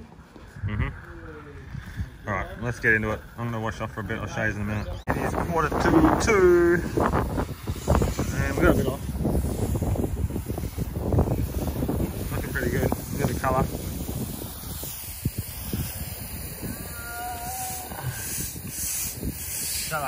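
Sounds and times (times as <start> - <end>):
wind buffeting microphone: 0.0 - 20.0
garden hoses spraying water: 0.2 - 20.0.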